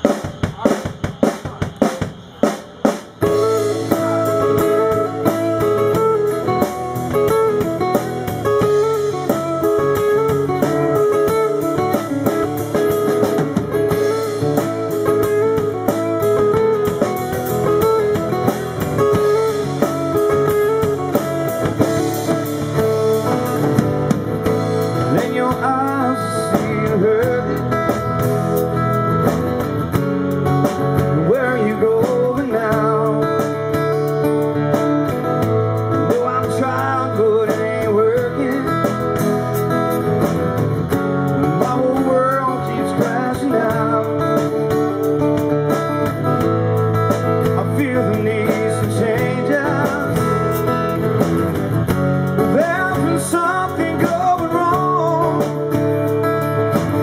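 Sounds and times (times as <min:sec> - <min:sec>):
band playing guitars and drums: 0:00.0 - 0:57.0.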